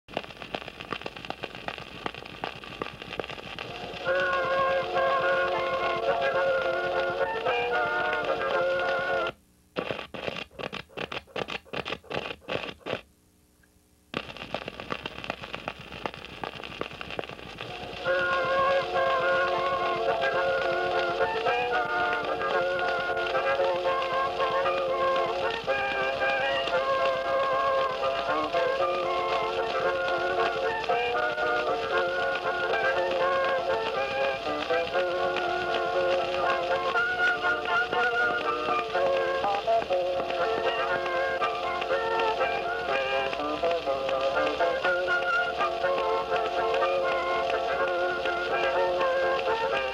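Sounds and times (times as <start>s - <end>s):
record surface hiss: 0.0s - 49.9s
instrumental music on phonograph: 0.1s - 13.0s, 14.2s - 49.9s
rapid clicks: 0.1s - 13.0s, 14.1s - 49.9s.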